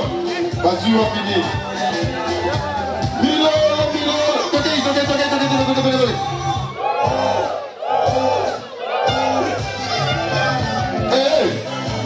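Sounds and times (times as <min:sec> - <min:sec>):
band music: 0:00.0 - 0:12.0
crowd shouting in unison: 0:06.1 - 0:12.0.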